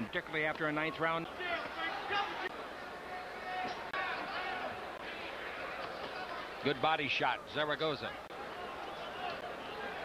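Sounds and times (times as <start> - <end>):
murmur of crowd voices: 0.0 - 10.0.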